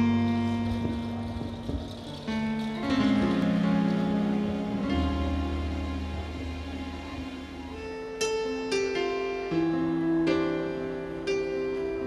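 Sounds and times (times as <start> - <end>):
live band playing slow ballad: 0.0 - 12.0.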